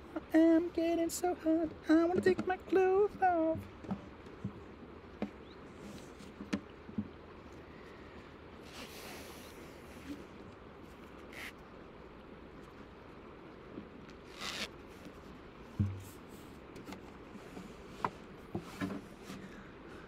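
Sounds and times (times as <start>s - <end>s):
handling rustles and scrapes: 8.6s - 10.3s
soft low thump: 15.7s - 16.2s.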